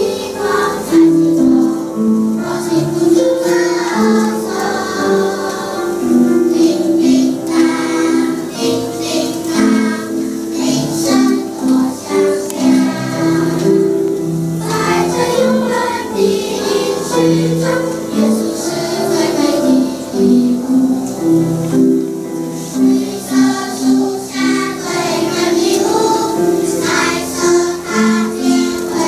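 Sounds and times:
children's choir singing: 0.0s - 29.0s.

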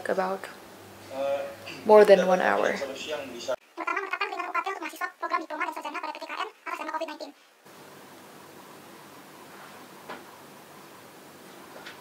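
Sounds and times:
person talking quickly: 3.8s - 7.4s.

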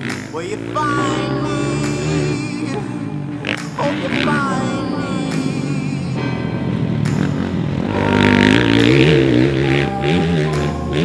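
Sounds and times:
background music: 0.0s - 11.0s
dirt bike engine revving: 0.0s - 11.0s.

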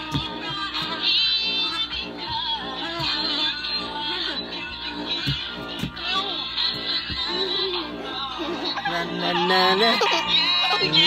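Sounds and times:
music with sung melody: 0.0s - 11.0s.

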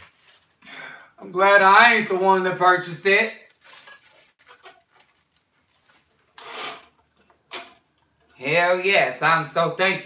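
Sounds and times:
rustling: 0.0s - 0.6s, 3.5s - 6.9s.

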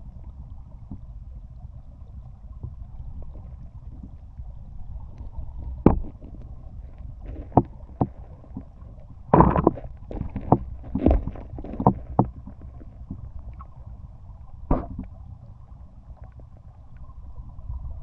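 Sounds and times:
underwater river rumble: 0.0s - 18.0s
sharp knocks and clicks: 5.8s - 6.3s, 7.3s - 8.7s, 9.3s - 13.2s, 14.7s - 15.1s.

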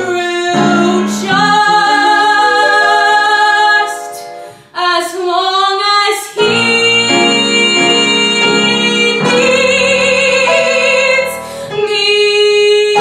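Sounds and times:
piano accompaniment: 0.0s - 13.0s
woman singing a ballad: 0.0s - 13.0s.

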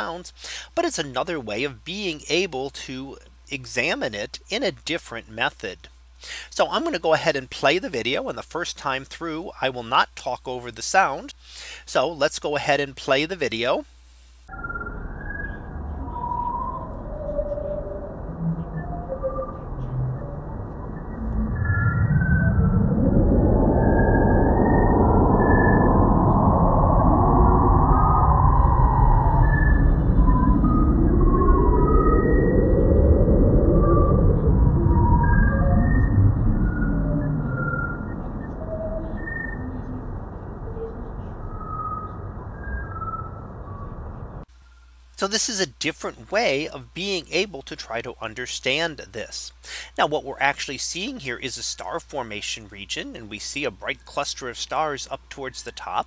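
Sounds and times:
scattered electronic bleeps: 14.5s - 44.4s
dense low rumbling with high tones: 14.5s - 44.5s.

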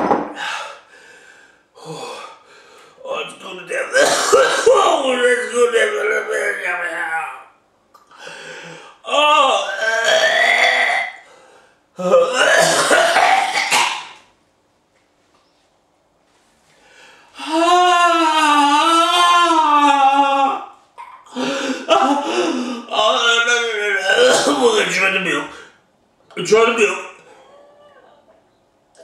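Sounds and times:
man's wordless straining vocal noises: 3.0s - 7.4s, 8.0s - 11.2s, 12.0s - 13.9s, 17.4s - 28.0s.

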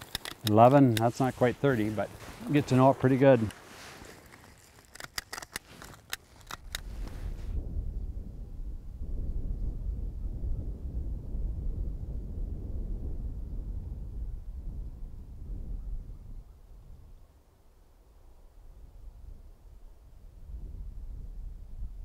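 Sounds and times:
hand stapler clicking: 0.0s - 1.1s.

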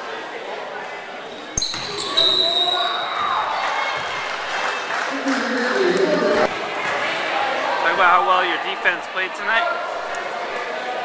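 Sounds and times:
voices of players and crowd: 0.0s - 11.0s
basketball bouncing on court: 1.6s - 2.2s.

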